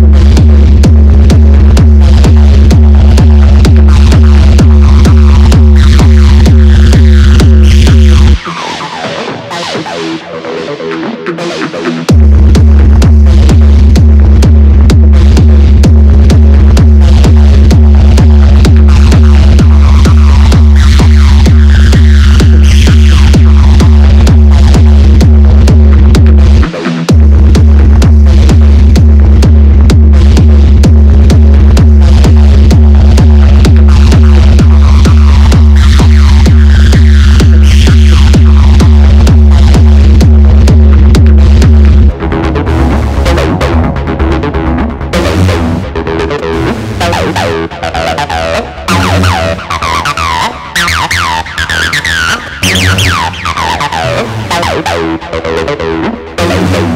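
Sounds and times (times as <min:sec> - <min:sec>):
kick drum: 0:00.0 - 0:08.4, 0:11.3 - 0:50.0
bass: 0:00.0 - 0:56.9
synth layers: 0:03.8 - 0:12.7, 0:41.4 - 0:56.9.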